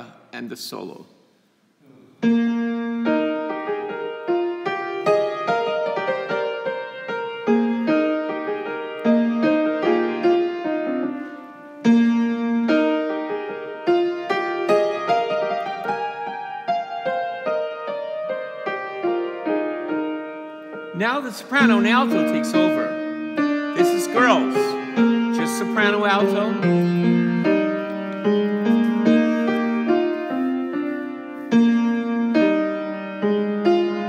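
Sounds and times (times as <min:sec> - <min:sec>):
keyboard playing piano melody: 0:02.2 - 0:34.0.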